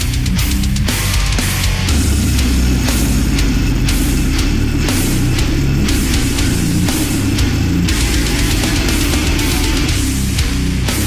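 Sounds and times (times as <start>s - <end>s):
death metal music: 0.0s - 11.0s.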